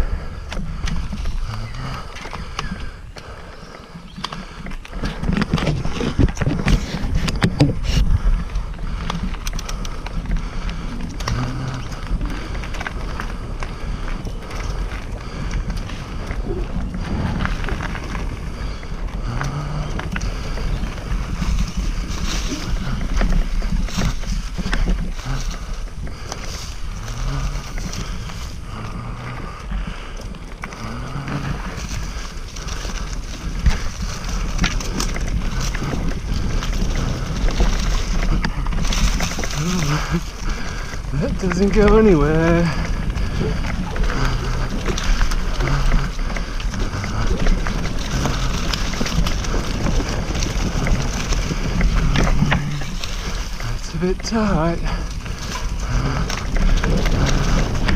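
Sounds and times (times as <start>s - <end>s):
bike knocking and rattling: 0.0s - 57.9s
tyres rolling over dirt: 0.0s - 57.9s
wind on microphone: 0.0s - 57.9s.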